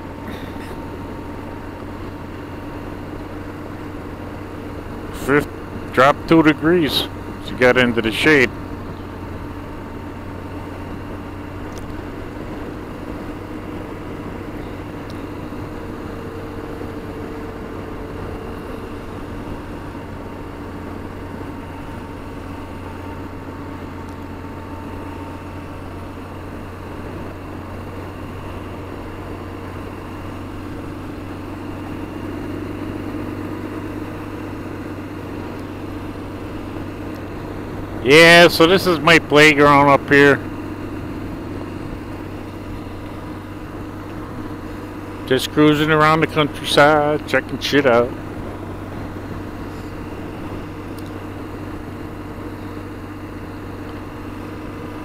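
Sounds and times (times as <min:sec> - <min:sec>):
motorcycle engine running: 0:00.0 - 0:55.0
wind and road noise: 0:00.0 - 0:55.0.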